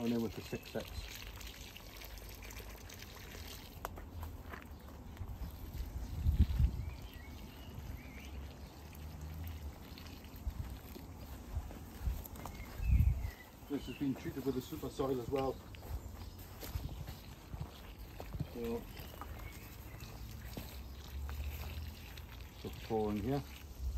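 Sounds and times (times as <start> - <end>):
water pouring onto soil: 0.0 - 23.9
wind rumble on microphone: 5.2 - 8.0, 11.5 - 13.4, 16.0 - 18.5.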